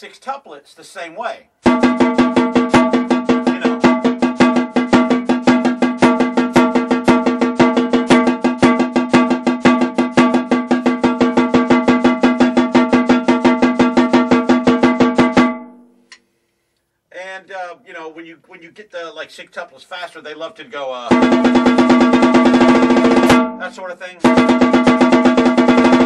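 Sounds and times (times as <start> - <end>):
snare drum played fast with sticks: 1.6 - 15.6, 21.1 - 26.0
snare drum ringing: 1.6 - 15.9, 21.1 - 26.0.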